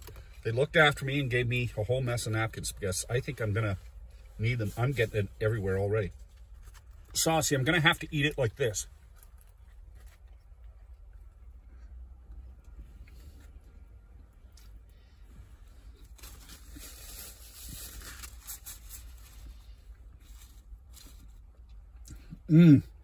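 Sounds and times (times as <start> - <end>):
chewing food: 8.9 - 13.6.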